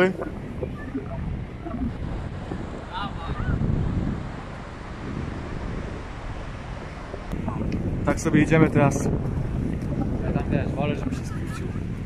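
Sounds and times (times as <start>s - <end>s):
sea surf breaking: 0.0s - 12.0s
wind noise on microphone: 0.0s - 12.0s.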